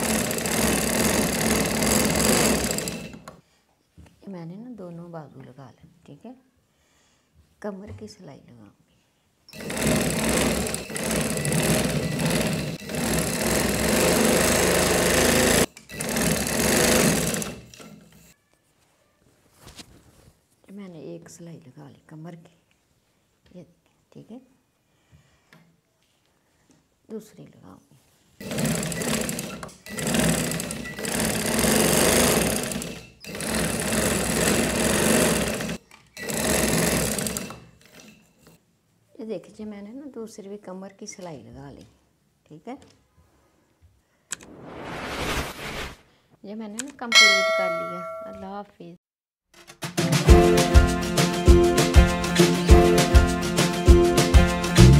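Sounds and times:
sewing machine stitching: 0.0s - 3.4s, 9.5s - 18.3s, 28.4s - 38.6s.

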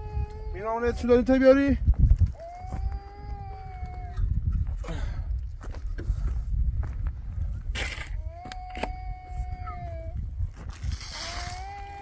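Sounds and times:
puppy whining: 8.4s - 10.2s.

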